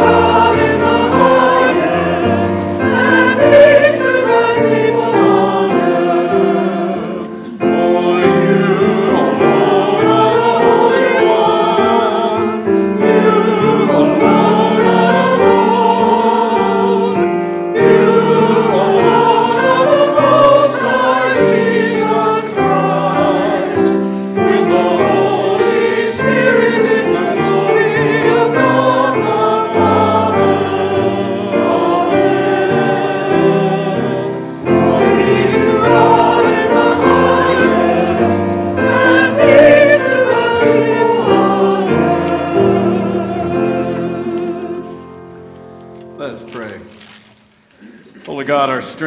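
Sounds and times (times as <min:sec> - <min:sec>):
choir and congregation singing hymn: 0:00.0 - 0:46.0.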